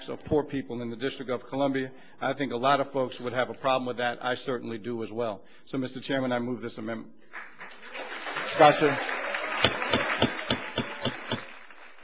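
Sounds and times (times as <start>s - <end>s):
hand clapping: 7.3s - 12.0s.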